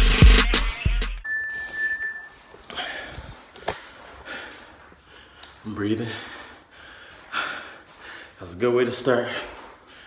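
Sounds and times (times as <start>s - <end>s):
hip hop music with bass beat: 0.0s - 2.4s
short steady high tone: 1.2s - 2.6s.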